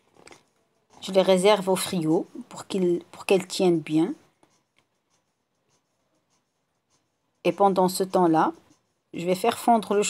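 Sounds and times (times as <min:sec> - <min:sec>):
woman's voice: 0:01.0 - 0:04.3, 0:07.5 - 0:10.0.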